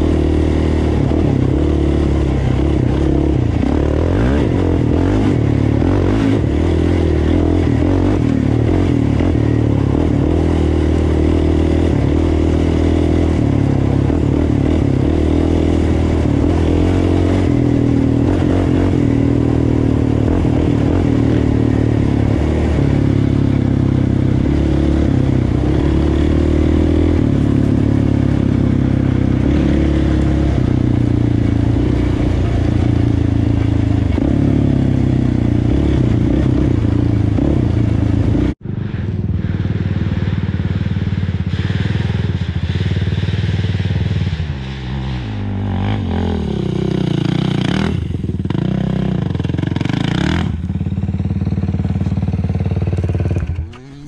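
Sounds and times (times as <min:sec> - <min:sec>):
quad engine revving: 0:00.0 - 0:54.0.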